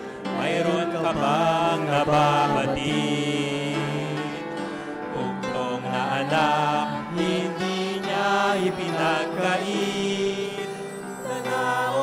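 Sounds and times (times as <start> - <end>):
instrumental accompaniment: 0.0 - 12.0
man singing a hymn: 0.2 - 12.0.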